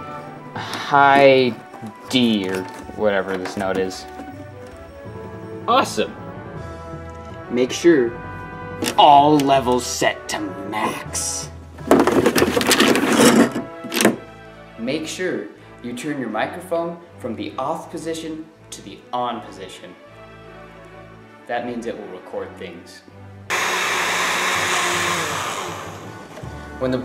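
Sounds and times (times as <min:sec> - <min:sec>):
background music: 0:00.0 - 0:27.0
blender whirring: 0:23.5 - 0:26.4.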